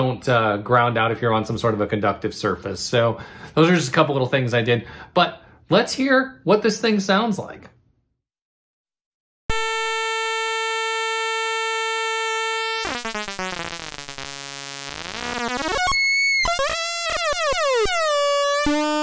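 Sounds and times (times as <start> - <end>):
buzzy synth tone warbling: 9.5 - 19.0.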